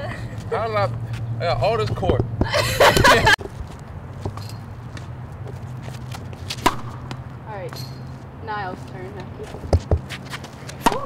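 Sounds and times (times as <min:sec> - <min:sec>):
tennis racket hitting ball: 0:06.4 - 0:08.1, 0:09.2 - 0:11.0.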